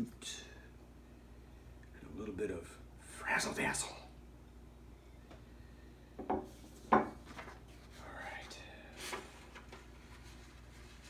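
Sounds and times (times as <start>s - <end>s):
paper rustling: 7.2s - 8.0s, 8.9s - 11.0s.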